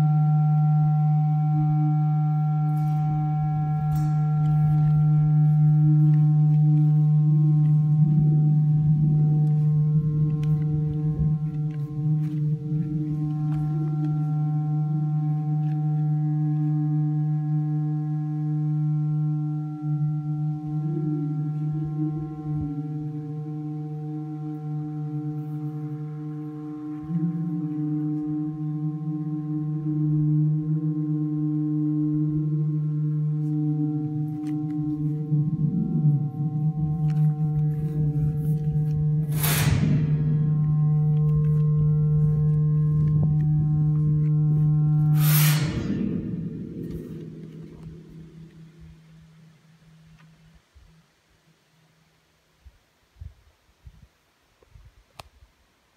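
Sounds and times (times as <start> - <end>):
high metallic ringing tones: 0.0 - 30.2, 31.7 - 51.3
audio feedback through metal cistern: 0.0 - 50.6.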